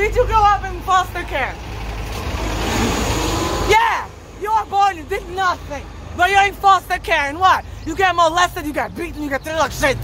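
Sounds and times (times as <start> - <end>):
woman's loud voice: 0.0 - 1.5, 3.7 - 8.6
bus engine and road noise: 0.0 - 10.0.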